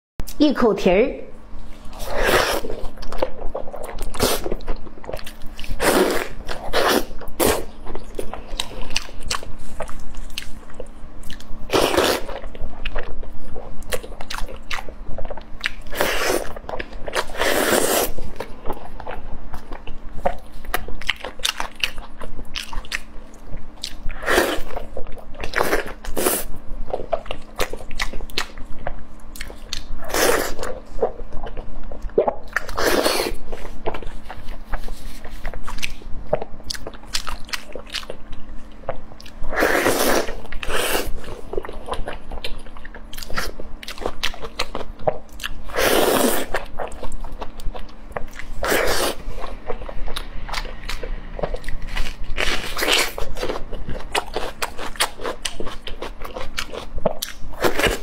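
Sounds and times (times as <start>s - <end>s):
wet biting and chewing: 1.8s - 58.0s.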